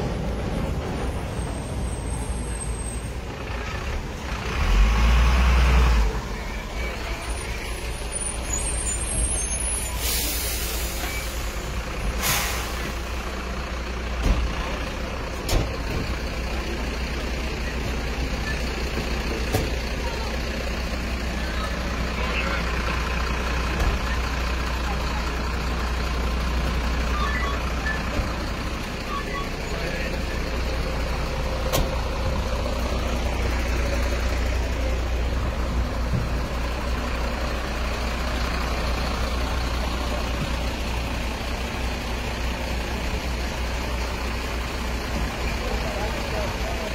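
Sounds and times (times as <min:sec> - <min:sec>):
diesel engine idling: 0:00.0 - 0:46.9
short hisses: 0:09.9 - 0:11.5, 0:12.2 - 0:13.0.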